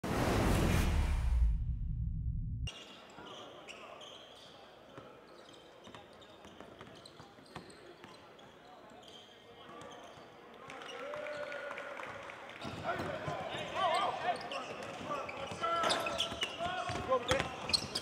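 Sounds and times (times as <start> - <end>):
deep intro sound effect: 0.0 - 2.7
players' voices echoing: 12.6 - 17.8.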